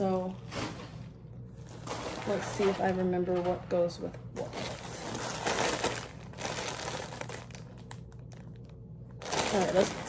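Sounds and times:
plastic garment bags crinkling: 0.0s - 10.0s.

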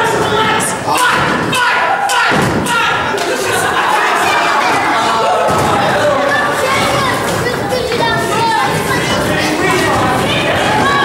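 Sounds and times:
spectators shouting: 0.0s - 11.0s.

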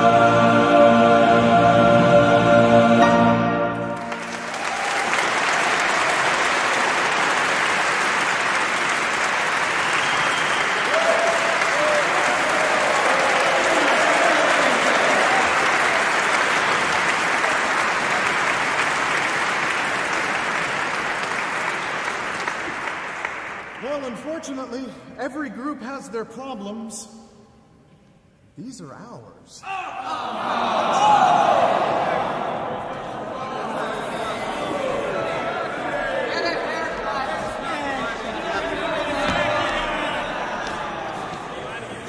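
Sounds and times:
audience applause: 3.8s - 24.0s, 30.1s - 42.0s.

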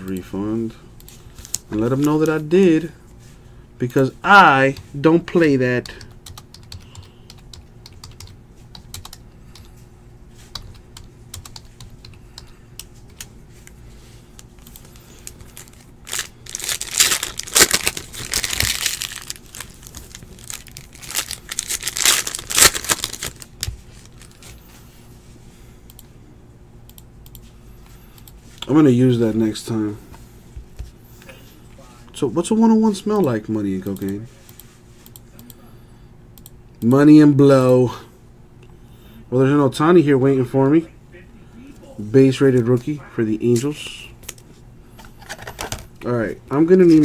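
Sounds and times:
cards snapping and rustling: 15.0s - 24.6s.

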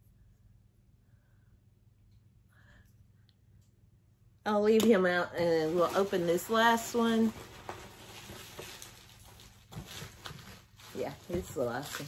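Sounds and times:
packing material rustling: 5.4s - 12.0s.

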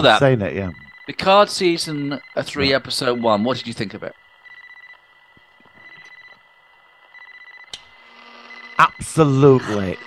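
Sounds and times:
high-pitched electronic whine: 0.0s - 10.0s.

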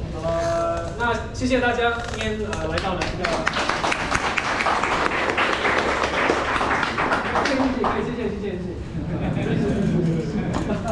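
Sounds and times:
audience applauding: 2.7s - 8.1s.

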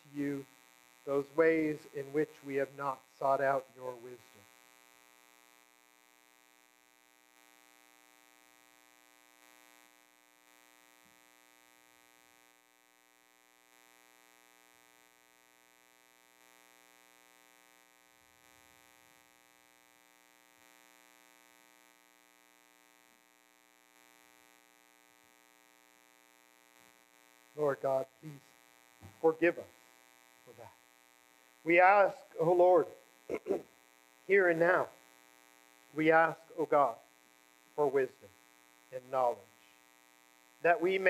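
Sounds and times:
faint mains hum: 0.0s - 41.0s.

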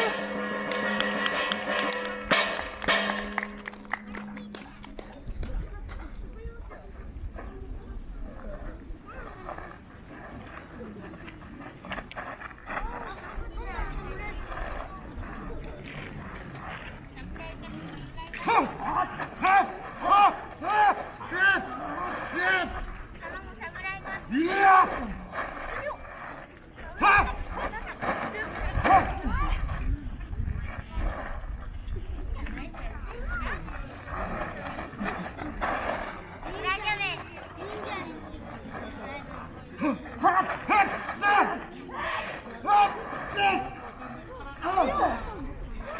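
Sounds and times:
noisy outdoor background: 0.0s - 45.9s
wind rumbling on microphone: 25.1s - 34.7s.

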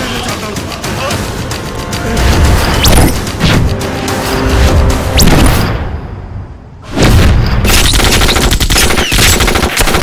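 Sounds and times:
automatic gunfire: 7.7s - 10.0s.

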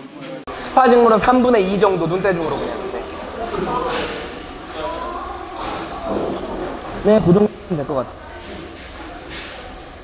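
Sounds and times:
voices in a tiled room: 0.0s - 10.0s.

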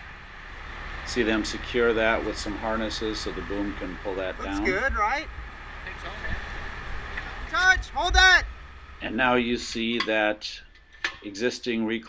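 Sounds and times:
faint steady whine: 0.0s - 12.0s
steady low rumble: 0.0s - 12.0s
man shouting: 4.4s - 5.3s, 7.5s - 8.5s.

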